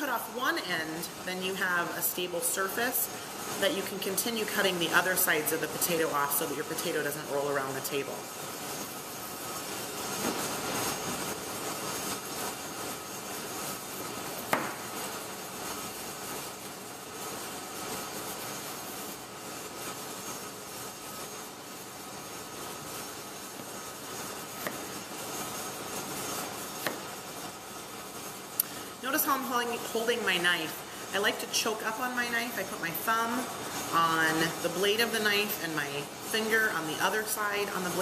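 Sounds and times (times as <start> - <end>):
steady background hiss: 0.0 - 38.0
knife slicing potato: 26.8 - 27.1.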